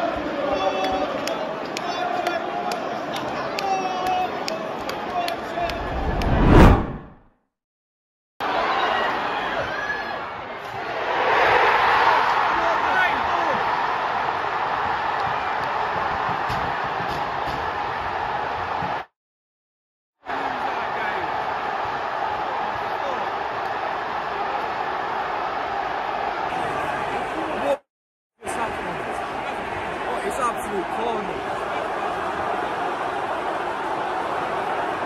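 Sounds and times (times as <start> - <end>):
stadium crowd cheering: 0.0 - 7.2, 8.4 - 19.1, 20.2 - 27.8, 28.4 - 35.0.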